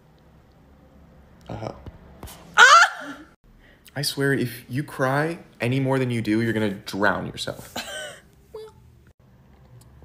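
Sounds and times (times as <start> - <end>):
high-pitched vocal cry: 2.6 - 3.3.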